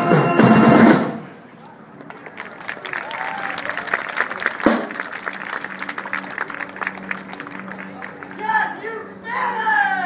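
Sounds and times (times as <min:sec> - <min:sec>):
audience clapping: 0:01.6 - 0:08.5.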